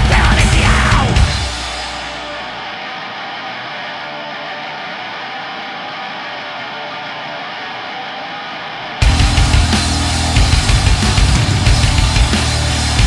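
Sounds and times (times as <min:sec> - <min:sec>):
deep bass: 0:00.0 - 0:01.8, 0:09.0 - 0:13.0
distorted electric guitar: 0:00.0 - 0:13.0.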